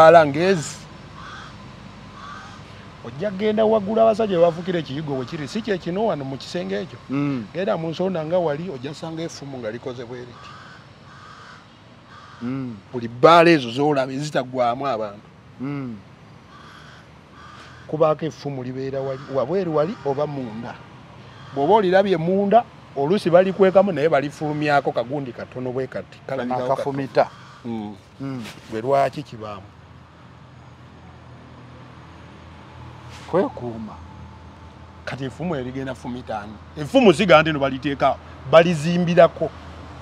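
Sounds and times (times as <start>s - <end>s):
faint harsh bird calls: 0.0s - 13.1s, 15.0s - 22.3s, 23.1s - 31.2s
quiet outdoor ambience: 0.0s - 40.0s.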